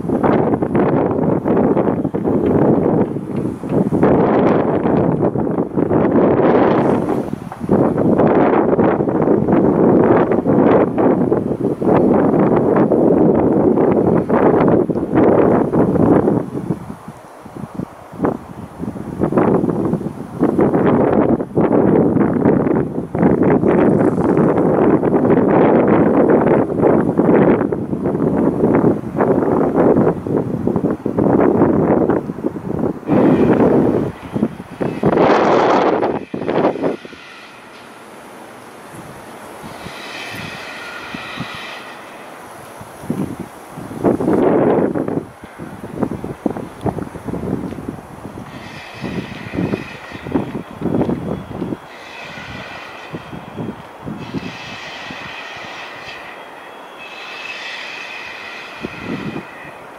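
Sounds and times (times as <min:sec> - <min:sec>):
wind buffeting microphone: 0:00.0 - 0:59.9
high-pitched squeal: 0:33.1 - 0:38.2, 0:39.4 - 0:42.4, 0:48.4 - 0:59.9.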